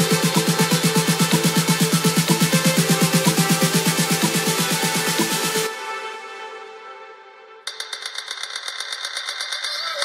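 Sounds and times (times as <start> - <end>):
fast percussion roll: 7.7 - 10.0.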